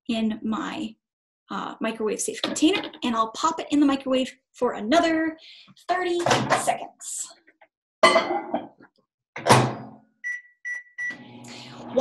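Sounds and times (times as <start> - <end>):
short keypad beeps: 10.2 - 11.2
microwave humming: 10.3 - 12.0.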